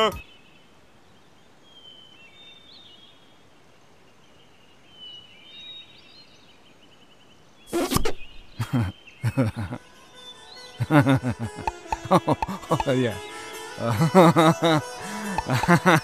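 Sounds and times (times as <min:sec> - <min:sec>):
laughter: 0:08.6 - 0:09.8, 0:10.8 - 0:12.8, 0:13.9 - 0:16.0.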